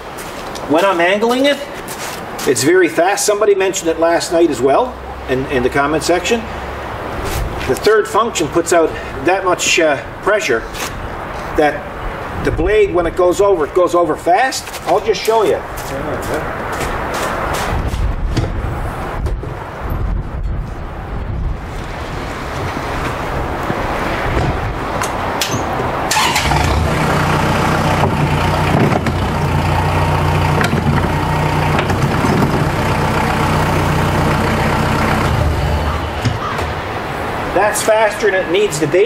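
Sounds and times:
tractor diesel engine running: 25.5s - 37.1s.

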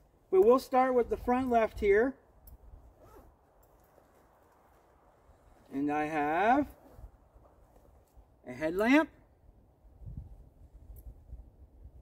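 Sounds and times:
soft scrapes in pocket: 2.7s - 8.2s.

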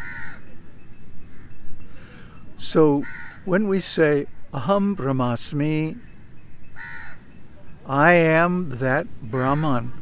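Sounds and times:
crow cawing: 0.0s - 0.5s, 1.2s - 2.3s, 3.0s - 3.5s, 6.0s - 7.3s, 9.4s - 10.0s.

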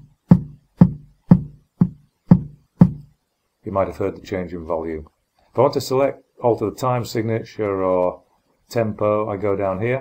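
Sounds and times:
kick drum hits: 0.0s - 3.1s.

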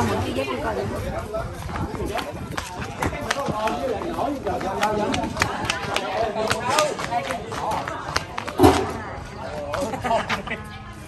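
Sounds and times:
people talking: 0.0s - 11.0s
footsteps in sandals on concrete: 0.1s - 11.0s.

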